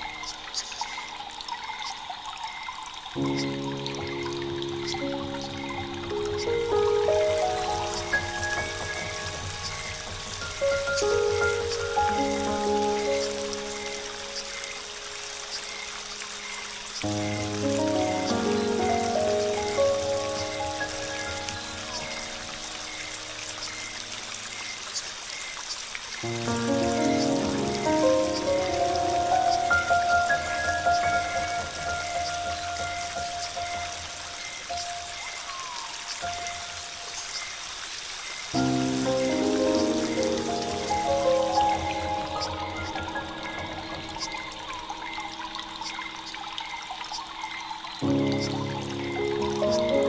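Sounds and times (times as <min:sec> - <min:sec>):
running water cascade: 0:00.0 - 0:50.0
soft slow ambient music: 0:02.9 - 0:37.6, 0:38.6 - 0:50.0.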